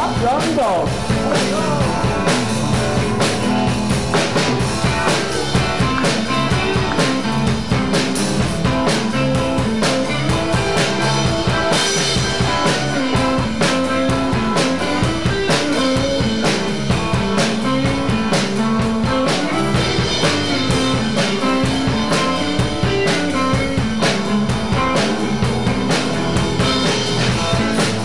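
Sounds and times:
drum kit beat: 0:00.0 - 0:28.0
electric bass line: 0:00.0 - 0:28.0
electric guitars: 0:00.0 - 0:28.0.

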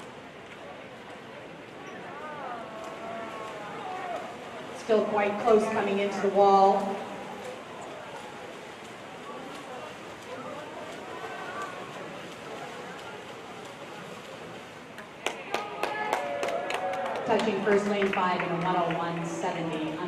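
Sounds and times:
distant voices: 0:00.0 - 0:20.0
swimmers splashing: 0:00.0 - 0:20.0
people shouting: 0:02.1 - 0:04.4.

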